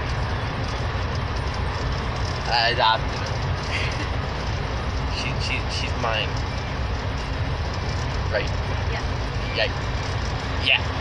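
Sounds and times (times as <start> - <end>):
car cabin road and engine rumble: 0.0 - 11.0.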